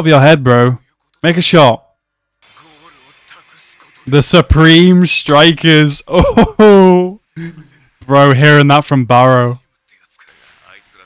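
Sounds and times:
light hiss: 0:02.4 - 0:04.2.

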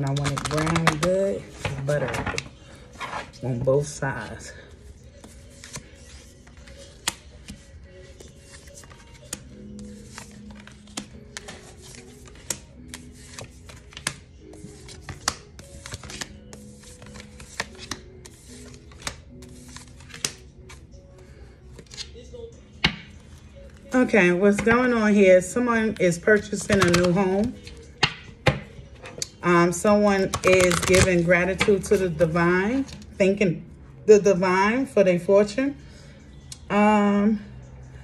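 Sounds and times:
soft background music: 0:00.0 - 0:38.0.

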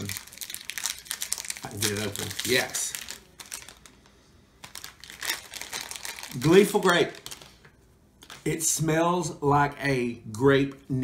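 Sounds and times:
plastic pouch crinkling: 0:00.0 - 0:08.5.

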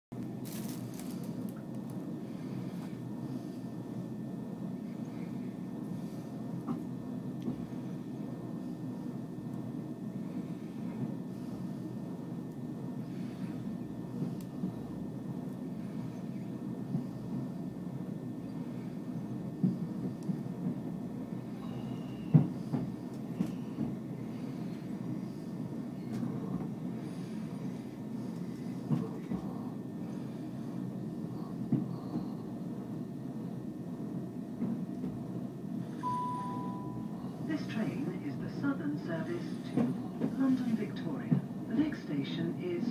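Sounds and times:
train rumbling on rails: 0:00.1 - 0:42.9.

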